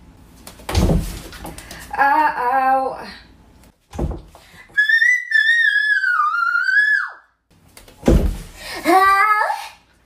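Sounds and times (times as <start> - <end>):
child's high-pitched squeal: 4.8 - 7.3.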